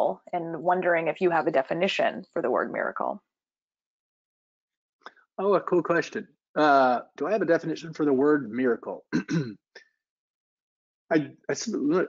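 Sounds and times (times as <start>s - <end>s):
man clearing his throat: 6.6s - 7.4s, 9.1s - 9.6s.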